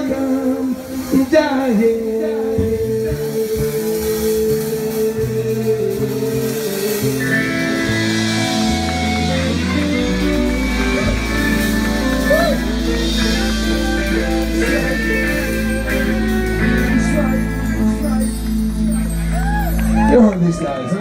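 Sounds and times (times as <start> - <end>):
person singing: 0.0 - 19.8
live rock band playing: 0.0 - 21.0
cymbals: 3.0 - 20.1
saxophone: 3.0 - 20.1.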